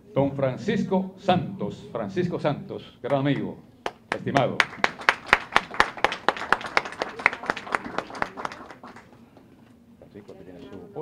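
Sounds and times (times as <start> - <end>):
audience applause: 4.1 - 9.2.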